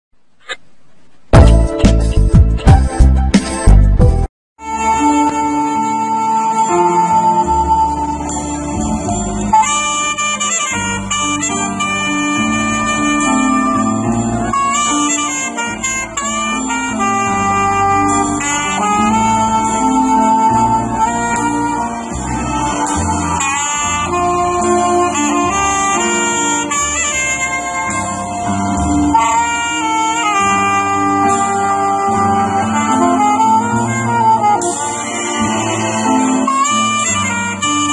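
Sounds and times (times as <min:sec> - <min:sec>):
steady drum beat: 0:01.4 - 0:02.9
keyboard chords: 0:01.4 - 0:37.9
saxophone melody: 0:04.6 - 0:37.9.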